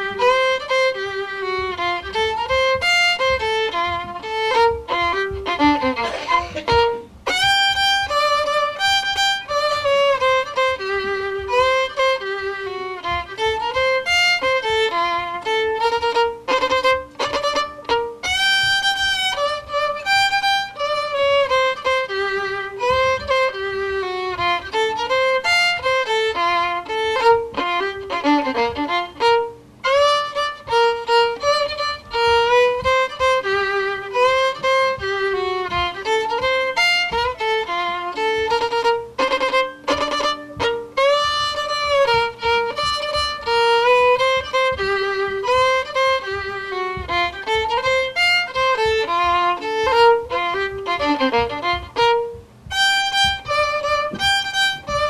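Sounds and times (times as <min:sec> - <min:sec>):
fiddle playing rag tune: 0:00.0 - 0:55.0.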